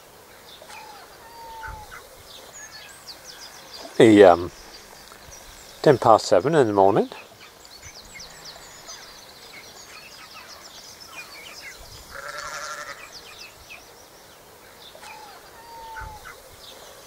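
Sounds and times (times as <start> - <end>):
small birds chirping: 0.0 - 17.0
sheep bleating: 12.1 - 13.1.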